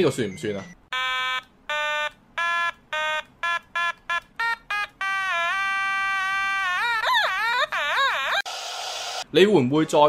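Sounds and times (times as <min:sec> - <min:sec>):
electronic toy instrument notes: 0:00.9 - 0:08.5.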